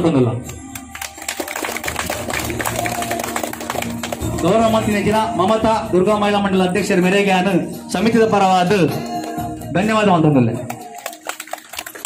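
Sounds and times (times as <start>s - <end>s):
people clapping: 0.4s - 5.6s, 9.1s - 9.6s, 10.6s - 12.0s.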